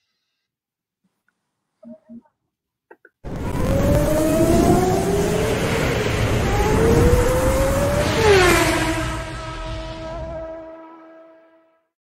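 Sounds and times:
racing engine accelerating: 0:03.2 - 0:11.2
falling sweep into held tone: 0:03.3 - 0:11.2.

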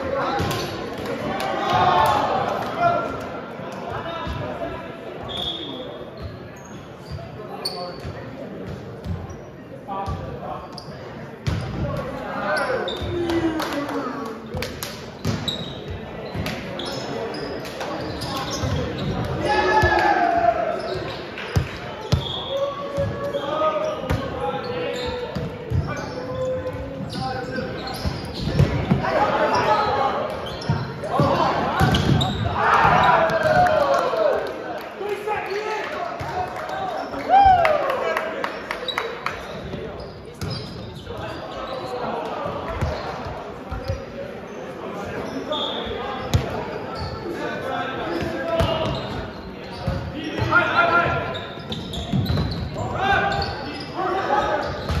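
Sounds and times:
players shouting and chattering: 0:00.0 - 0:55.0
volleyballs struck and bouncing: 0:30.3 - 0:33.8.

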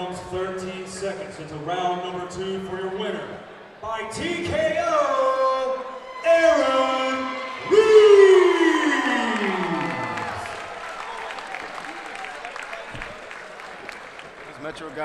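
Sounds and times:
announcer's amplified voice: 0:01.6 - 0:10.4
crowd cheering and applause: 0:05.9 - 0:15.0.

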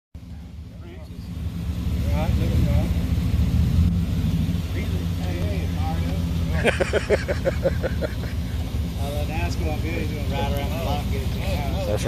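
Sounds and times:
truck engine rumbling: 0:00.1 - 0:12.0.

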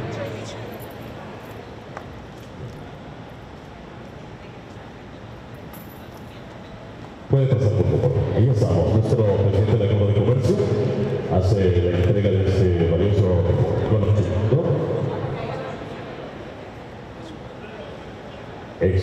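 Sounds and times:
man speaking through loudspeakers: 0:07.3 - 0:15.8, 0:18.8 - 0:19.0.

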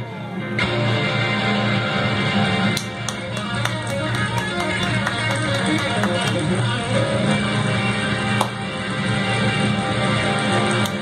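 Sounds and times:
electric guitar solo: 0:00.0 - 0:10.0
low backing music: 0:00.0 - 0:11.0.

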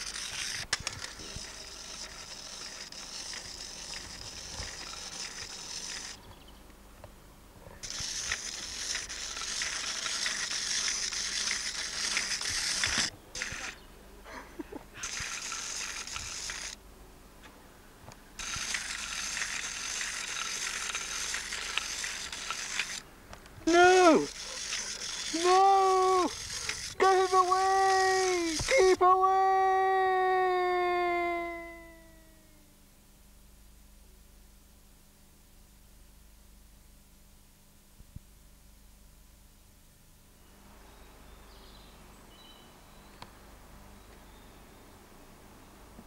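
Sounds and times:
clockwork toy motor whirring: 0:00.0 - 0:06.3, 0:07.8 - 0:13.8, 0:15.0 - 0:16.8, 0:18.4 - 0:23.0, 0:23.6 - 0:29.0.

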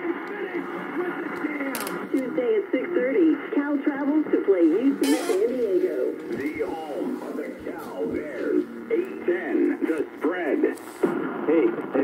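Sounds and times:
radio voice through small speaker: 0:00.0 - 0:12.0.

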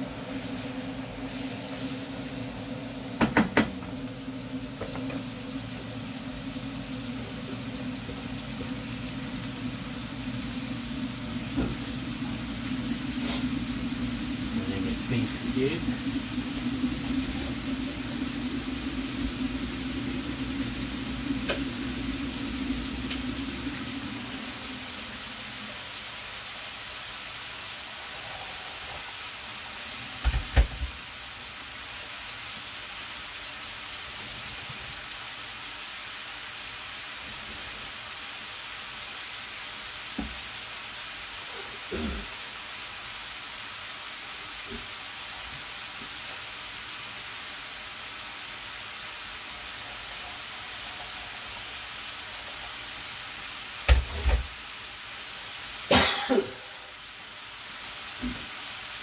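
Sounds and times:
food sizzling in a frying pan: 0:00.0 - 0:59.0
low hum: 0:03.8 - 0:26.0.

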